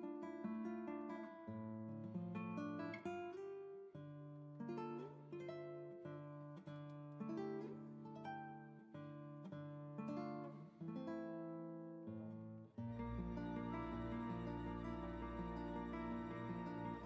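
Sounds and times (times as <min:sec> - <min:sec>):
acoustic guitar playing: 0:00.0 - 0:17.0.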